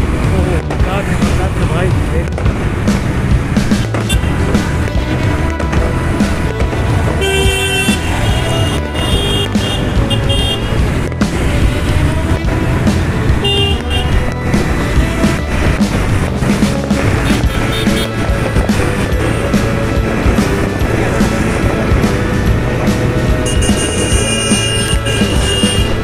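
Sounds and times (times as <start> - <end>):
music: 0.0 - 26.0
traffic engines and road noise: 0.0 - 26.0
vehicle horn toot: 4.1 - 4.4, 7.2 - 10.8, 13.4 - 14.2, 17.2 - 18.2, 23.4 - 26.0.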